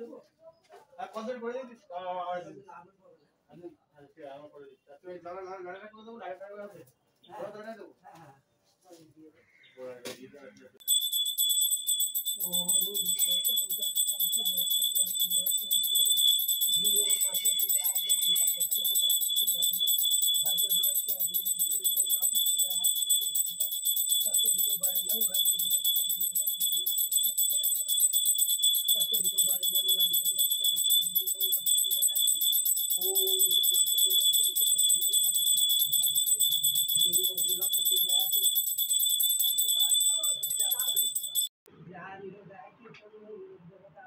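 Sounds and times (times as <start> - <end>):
hand bell ringing: 10.8 - 41.5.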